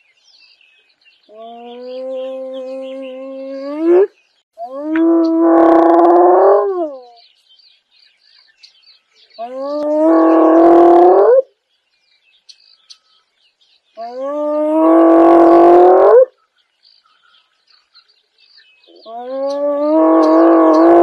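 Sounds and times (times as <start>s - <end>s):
birds chirping faintly: 0.0s - 21.0s
hyena whooping: 1.4s - 7.2s, 19.0s - 21.0s.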